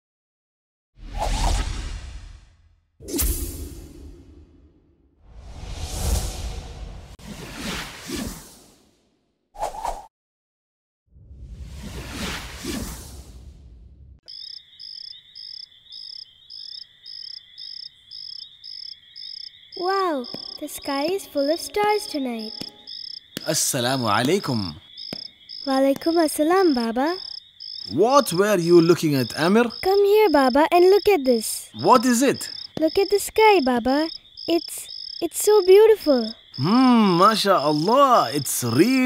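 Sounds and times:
whooshing transition: 1.0s - 8.7s, 11.2s - 14.2s
whoosh sound effect: 5.3s - 8.8s
crickets chirping: 14.3s - 39.0s.

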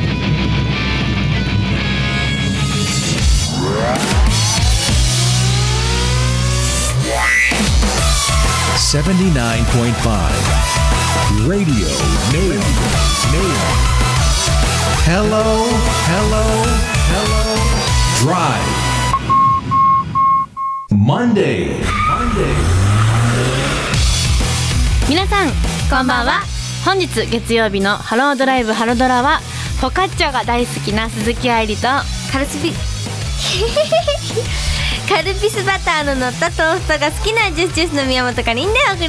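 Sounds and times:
engine revving up: 1.9s - 8.9s, 21.8s - 25.9s
music with gliding voices: 2.6s - 19.1s
short high electronic beeps: 19.1s - 20.9s.

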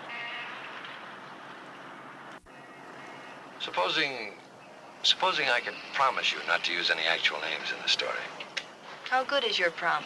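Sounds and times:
street traffic noise: 0.0s - 10.0s.

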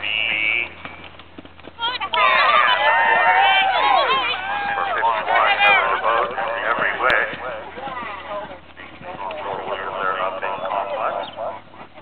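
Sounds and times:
people talking: 0.0s - 0.8s, 1.8s - 12.0s
horse galloping on grass: 0.0s - 12.0s.

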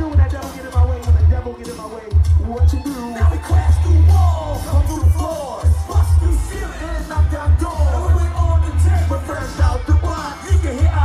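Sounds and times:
heavy bass beat: 0.0s - 11.0s
person singing into microphone: 2.4s - 11.0s.

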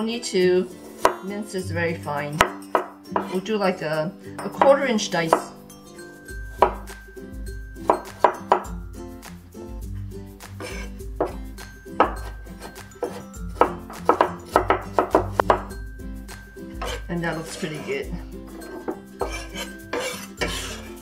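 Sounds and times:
knife chopping on wooden board: 6.6s - 6.9s, 7.8s - 8.7s, 12.0s - 15.7s, 16.8s - 17.9s, 18.7s - 20.9s.

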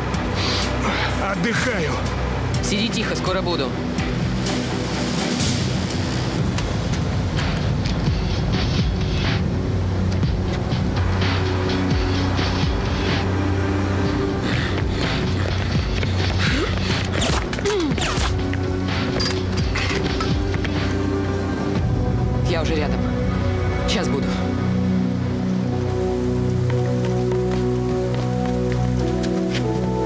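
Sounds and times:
low drone: 3.8s - 30.0s.

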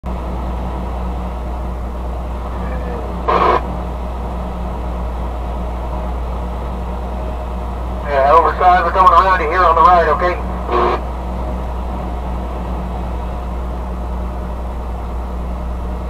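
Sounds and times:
road noise: 0.0s - 16.0s
truck engine drone: 0.0s - 16.0s.

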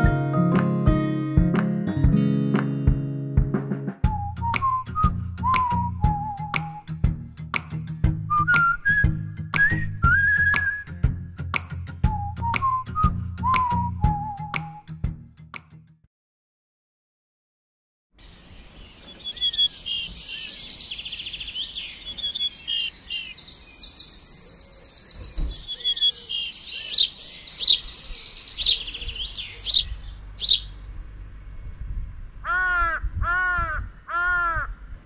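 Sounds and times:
small birds chirping: 18.2s - 30.8s
sharp falling bird calls: 18.9s - 30.8s
crow cawing: 32.4s - 34.8s.

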